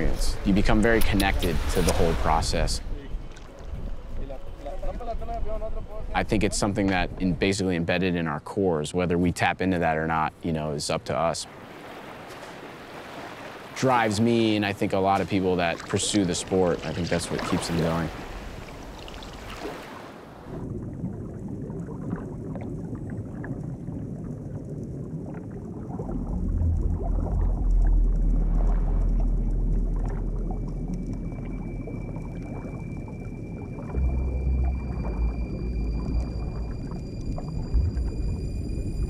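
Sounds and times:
water splash: 0.0 - 3.9, 11.5 - 39.0
muffled underwater rumble: 20.4 - 39.0
thin steady high tones: 30.2 - 39.0.

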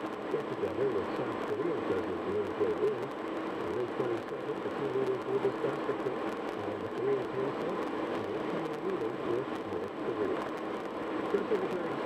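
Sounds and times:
road and tyre noise: 0.0 - 12.0
muffled radio voice: 0.3 - 10.4, 11.3 - 12.0.

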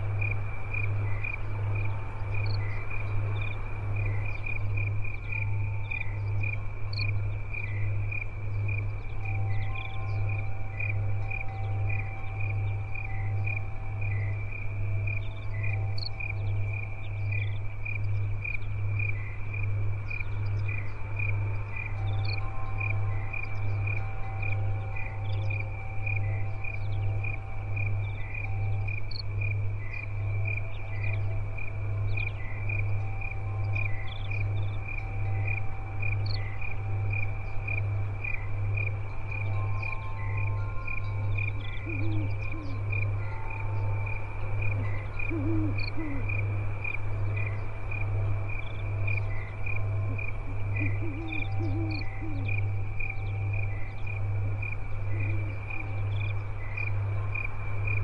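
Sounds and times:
crickets chirping: 0.0 - 58.0
low pulsing hum: 0.0 - 58.0
singing bowl tones: 7.7 - 18.4, 20.3 - 57.3.

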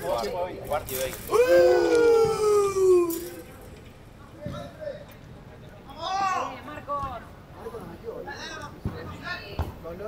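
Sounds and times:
faint voices: 0.0 - 6.6
man shouting: 1.3 - 3.4.

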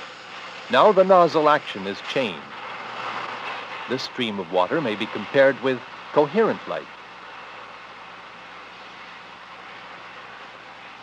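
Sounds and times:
film soundtrack hiss: 0.0 - 11.0.

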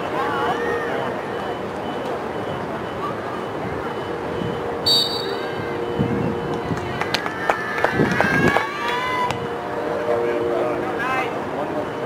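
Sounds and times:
reversing alarm beeping: 0.2 - 6.8, 9.5 - 12.0
referee's whistle blast: 4.9 - 5.6.

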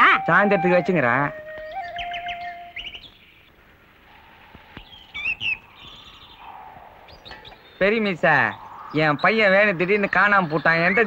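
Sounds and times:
birds chirping: 0.0 - 11.0
faint background ambience: 0.0 - 11.0.

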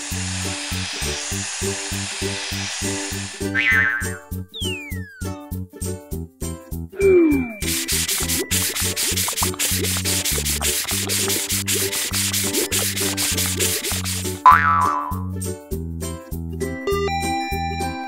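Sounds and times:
short swooping tone: 3.6 - 5.4, 7.0 - 8.6
children's music with bass beat: 3.6 - 18.0
sponge scrubbing: 7.6 - 14.4.

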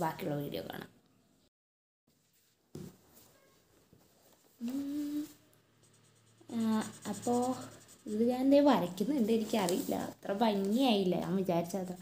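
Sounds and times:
person humming: 4.6 - 5.4.

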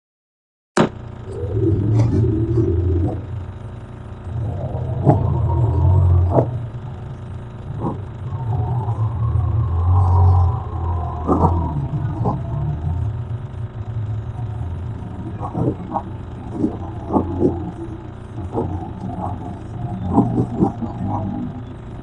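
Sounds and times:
low rumbling hum: 0.8 - 22.0
wavering whistle-like tones: 1.2 - 22.0.

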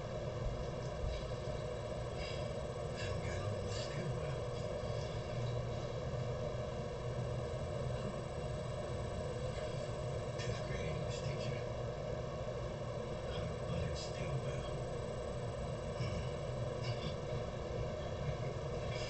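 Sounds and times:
low room hum: 0.0 - 19.0
faint indistinct voices: 12.9 - 19.0.

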